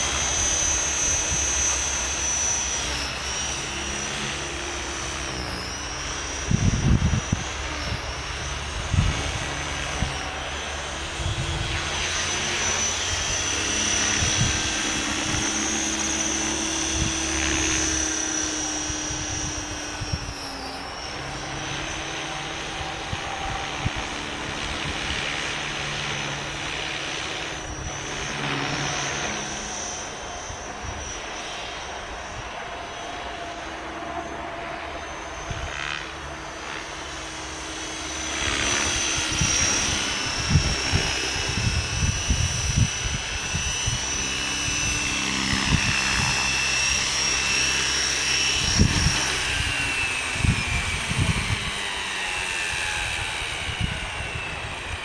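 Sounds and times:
wind rumble on microphone: 0.0s - 32.8s, 34.8s - 36.9s, 37.6s - 55.0s
rc helicopter motor whine: 0.0s - 55.0s.

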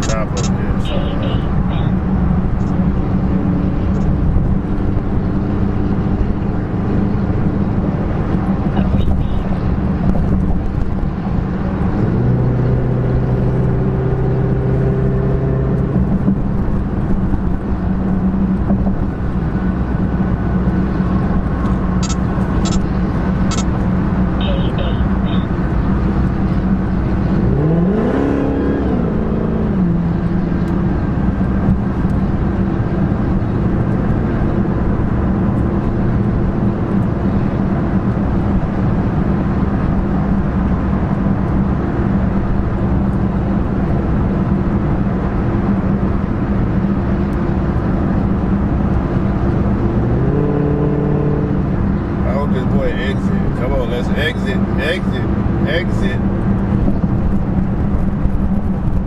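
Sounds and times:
car engine drone: 0.0s - 59.0s
road noise: 0.0s - 59.0s.

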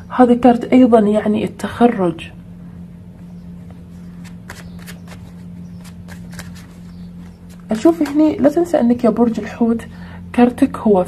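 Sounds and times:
low hum: 0.0s - 11.0s
cards clicking and rustling: 4.2s - 8.4s.

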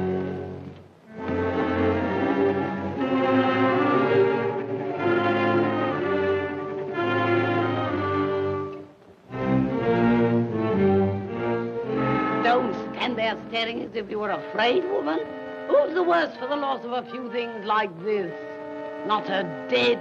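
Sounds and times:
orchestral strings playing chords: 0.0s - 20.0s.

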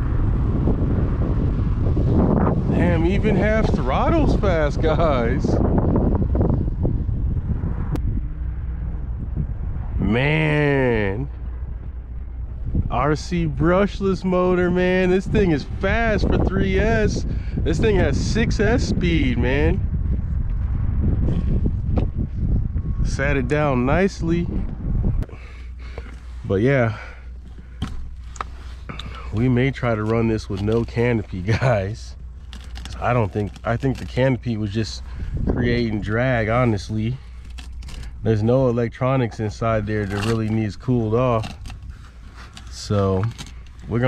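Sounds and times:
wind buffeting microphone: 0.0s - 44.0s
man's voice: 2.7s - 5.6s, 10.0s - 11.3s, 12.9s - 19.8s.

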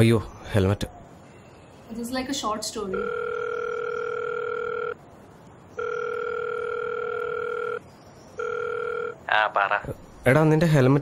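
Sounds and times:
person answering phone: 2.9s - 5.0s, 5.8s - 7.8s, 8.4s - 9.8s
telephone ring tone: 2.9s - 5.0s, 5.8s - 7.8s, 8.4s - 9.2s.

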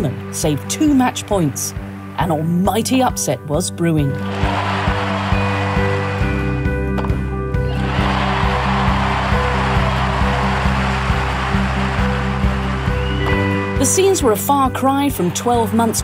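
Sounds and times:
crowd cheering and applauding: 4.2s - 6.7s, 7.6s - 13.8s.

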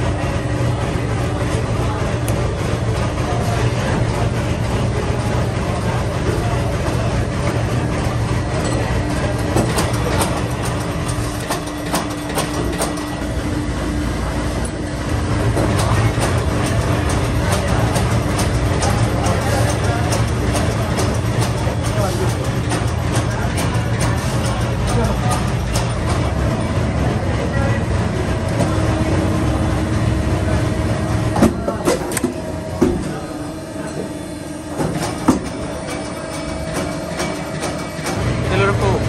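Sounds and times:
machinery low hum: 0.0s - 39.0s.

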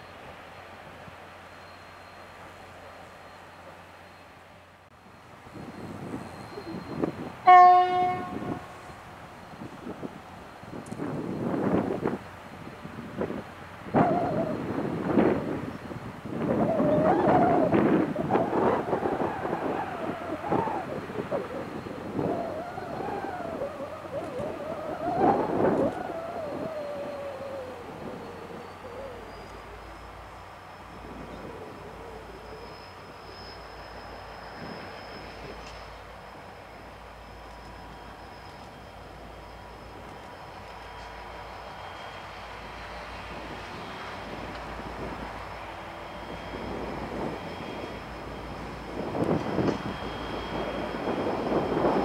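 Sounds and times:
diesel locomotive engines: 0.0s - 52.0s
locomotive horn blast: 7.4s - 8.9s.

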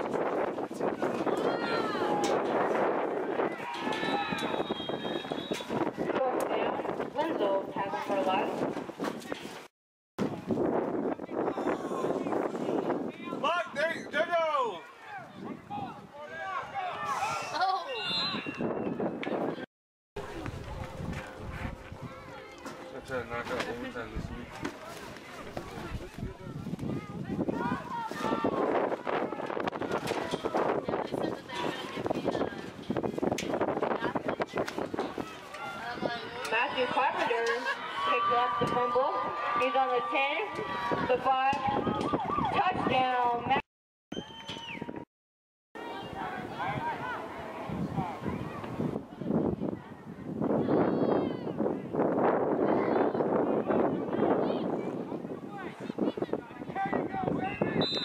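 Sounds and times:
wind buffeting microphone: 0.0s - 9.4s, 10.2s - 13.9s, 15.2s - 17.1s, 20.2s - 37.4s, 38.1s - 43.6s, 46.0s - 57.8s
people shouting and cheering: 0.8s - 6.8s, 11.3s - 19.6s, 24.9s - 32.7s, 34.0s - 43.5s, 45.8s - 51.9s
referee whistle blowing: 4.0s - 5.7s, 17.9s - 18.9s, 44.1s - 44.8s, 57.8s - 58.0s.

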